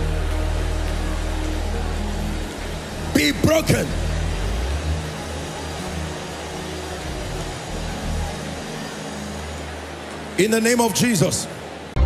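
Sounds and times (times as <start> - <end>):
low bass notes: 0.0 - 5.9
keyboard chords: 0.0 - 12.0
many voices praying aloud: 0.0 - 12.0.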